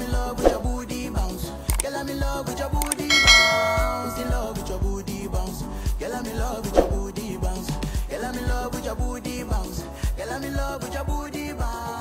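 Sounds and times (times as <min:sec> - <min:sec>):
notification bell chime: 0:03.1 - 0:04.6
music with steady beat: 0:03.1 - 0:05.1.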